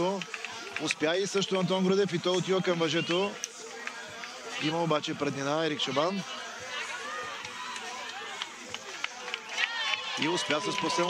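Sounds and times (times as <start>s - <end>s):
spectators cheering and shouting: 0.0s - 11.0s.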